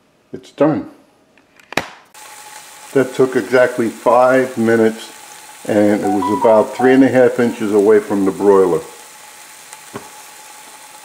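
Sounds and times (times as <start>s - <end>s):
glaze sizzling on a hot pan: 2.1s - 11.0s.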